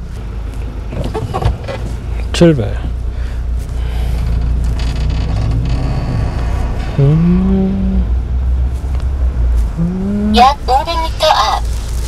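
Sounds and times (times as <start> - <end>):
truck engine accelerating: 0.0 - 12.0.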